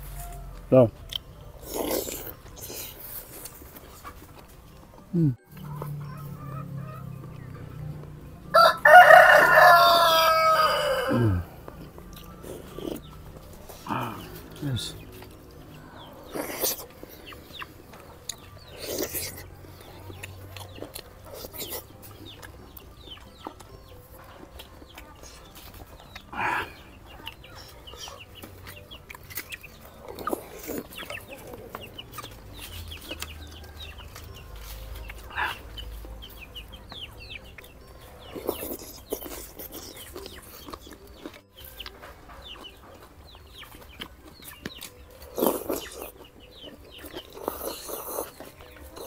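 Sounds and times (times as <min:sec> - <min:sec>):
chewing: 0:00.0 - 0:49.0
fowl clucking: 0:05.6 - 0:07.9, 0:08.5 - 0:11.5.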